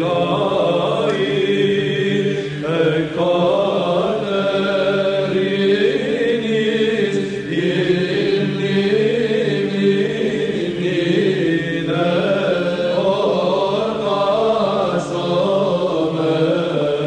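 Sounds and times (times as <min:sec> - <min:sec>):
voices chanting slow melody: 0:00.0 - 0:17.0.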